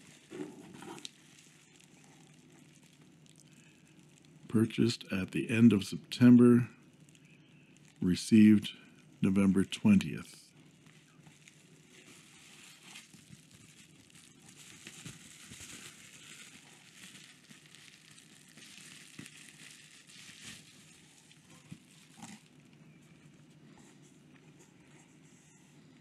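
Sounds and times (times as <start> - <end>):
bubble wrap crinkling and rustling: 0.0 - 4.5, 5.7 - 9.2, 10.5 - 26.0.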